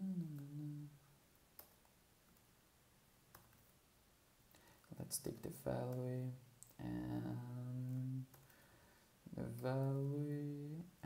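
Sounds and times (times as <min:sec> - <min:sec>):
man humming hesitantly: 0:00.0 - 0:01.0.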